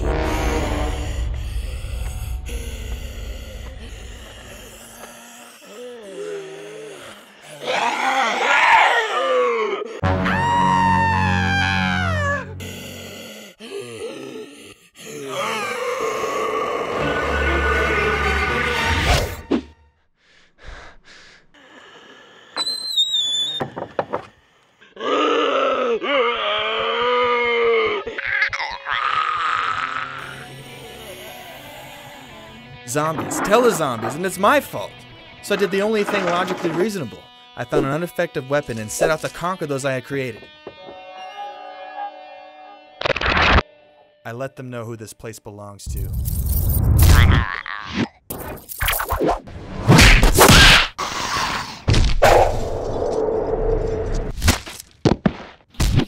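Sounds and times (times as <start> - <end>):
low rumble: 0.0 - 4.8
zombie-style groan: 0.0 - 19.3, 21.5 - 22.6, 24.8 - 37.2
man screaming: 7.5 - 12.6, 25.0 - 32.4, 41.2 - 42.8
high wavering whistle-like tone: 22.6 - 23.6.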